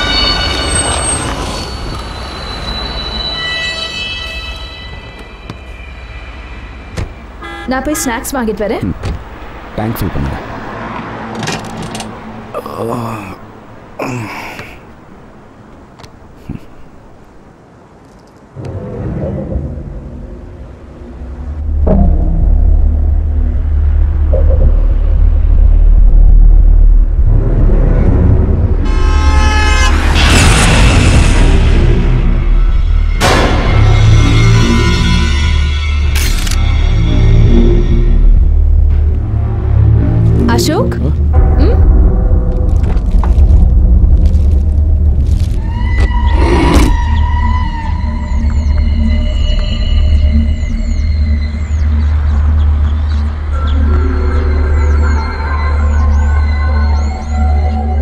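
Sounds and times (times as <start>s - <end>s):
shrill horn-like blare: 0.0s - 8.2s, 28.8s - 38.2s
low rumble: 18.6s - 29.1s, 30.0s - 57.1s.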